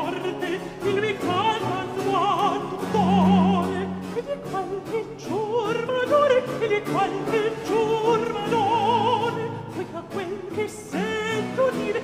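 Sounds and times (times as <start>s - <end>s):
instrumental accompaniment: 0.0s - 10.3s
opera singing with vibrato: 0.0s - 12.0s.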